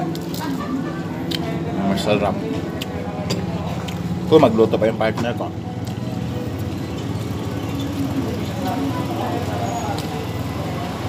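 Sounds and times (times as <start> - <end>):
distant voices talking: 0.0 - 11.0.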